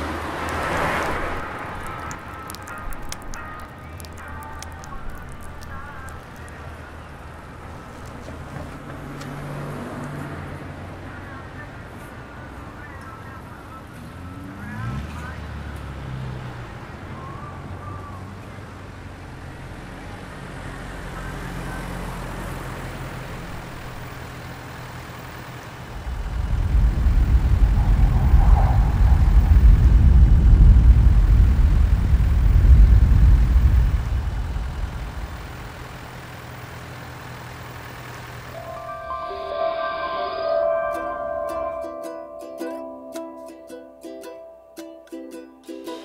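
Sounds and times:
car engine rumble: 0.0 - 44.6
road noise: 0.0 - 46.0.

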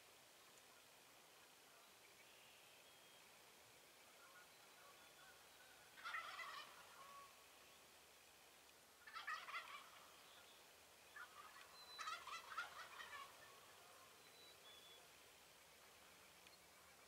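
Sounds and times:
turkeys gobbling: 4.2 - 7.5, 9.0 - 10.5, 11.1 - 14.2.

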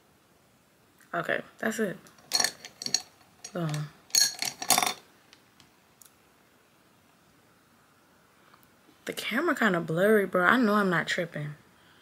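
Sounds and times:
makeup containers clinking: 2.2 - 5.0.

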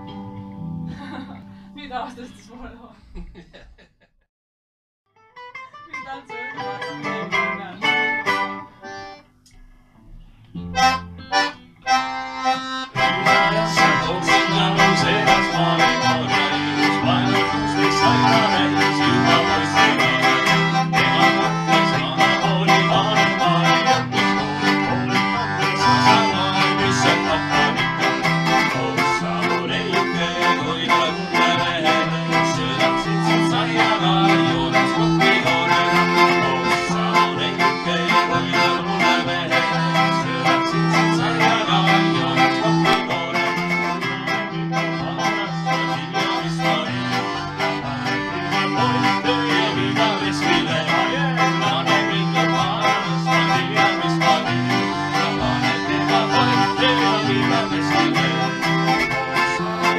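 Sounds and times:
acoustic guitar: 0.0 - 3.4, 5.2 - 59.9
mandolin: 5.4 - 9.2, 10.1 - 59.9
button accordion: 5.4 - 59.9.

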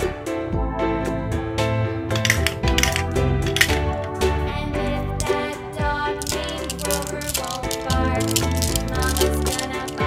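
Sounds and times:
background music: 0.0 - 10.0
glass marbles clicking: 2.2 - 4.2, 6.2 - 10.0.

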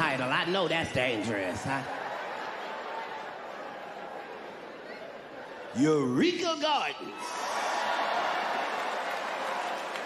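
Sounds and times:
audience laughing: 1.2 - 4.6.

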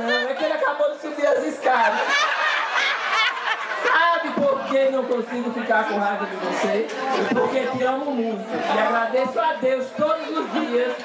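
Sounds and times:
group of people laughing: 0.0 - 7.7, 10.0 - 11.0.

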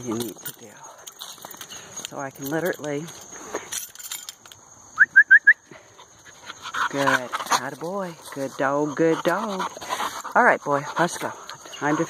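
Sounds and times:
high rising whistled chirps: 4.7 - 6.6.

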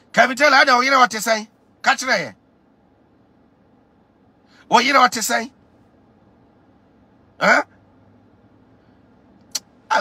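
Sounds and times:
low hum in car cabin: 0.0 - 10.0
man speaking: 0.1 - 2.4, 4.7 - 5.6, 7.4 - 7.8.

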